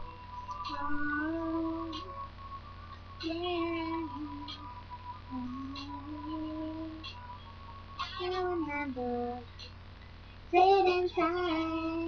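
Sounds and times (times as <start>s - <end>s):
faint steady high tone: 0.0s - 12.0s.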